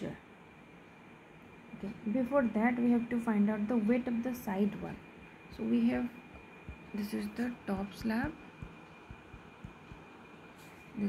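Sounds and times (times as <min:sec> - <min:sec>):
stylus tapping on tablet screen: 0:06.3 - 0:10.2.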